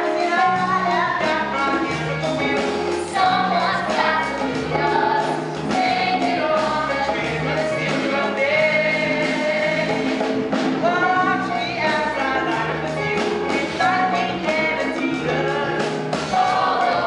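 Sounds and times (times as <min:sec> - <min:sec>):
instrumental accompaniment: 0:00.0 - 0:17.0
person singing live: 0:00.0 - 0:17.0.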